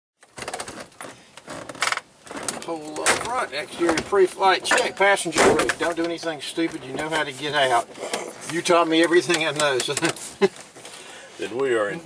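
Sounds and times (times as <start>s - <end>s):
handling noise rustling and clicking: 0.2s - 11.0s.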